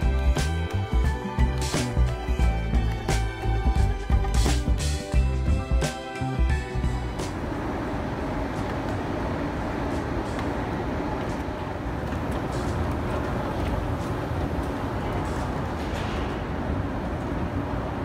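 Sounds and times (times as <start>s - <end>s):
escalator mechanical rumble: 0.0s - 18.0s.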